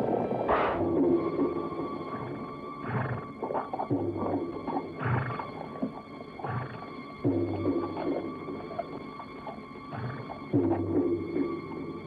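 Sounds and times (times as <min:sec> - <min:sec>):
horses calling: 0:02.0 - 0:10.8.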